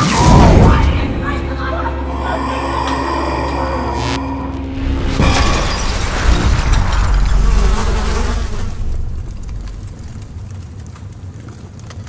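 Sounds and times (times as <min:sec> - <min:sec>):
deep rumble: 0:00.0 - 0:12.0
glass shards buzzing rush: 0:03.2 - 0:09.5.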